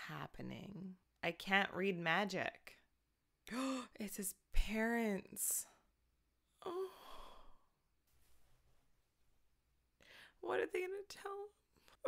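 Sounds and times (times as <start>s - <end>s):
woman sighing: 3.5s - 4.0s, 6.6s - 7.8s.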